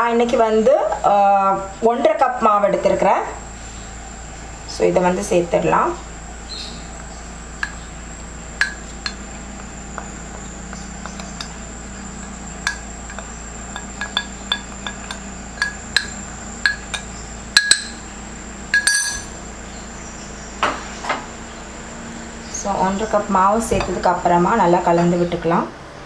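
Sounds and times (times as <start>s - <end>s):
clinks on glass bowl: 12.6s - 18.0s, 18.7s - 19.3s.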